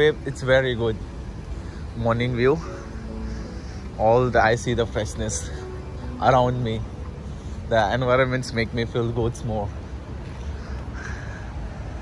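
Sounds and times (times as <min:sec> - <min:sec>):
low steady street rumble: 0:00.0 - 0:12.0
faint caw-like bird call: 0:10.6 - 0:11.6.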